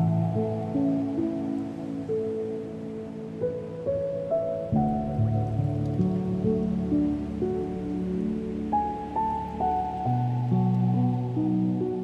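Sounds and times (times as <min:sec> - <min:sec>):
gentle solo piano: 0:00.0 - 0:12.0.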